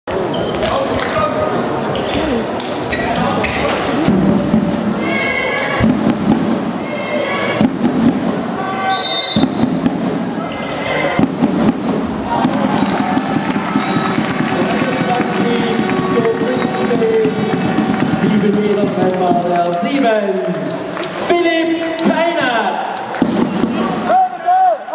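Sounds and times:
voices of players and spectators: 0.1 - 24.9
shoe squeaks: 0.2 - 0.8, 1.9 - 3.1.

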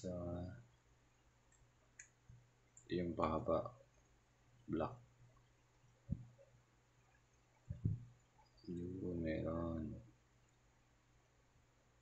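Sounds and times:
faint plastic clicks: 1.5 - 2.9.

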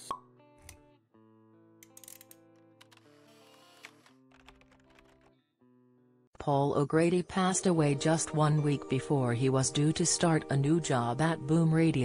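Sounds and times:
soft background music: 6.4 - 12.0.

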